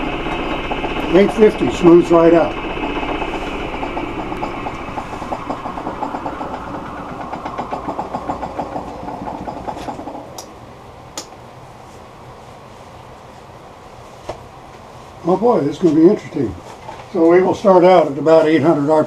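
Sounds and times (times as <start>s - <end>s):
wood lathe winding down: 0.0s - 10.5s
low steady hum: 0.0s - 16.6s.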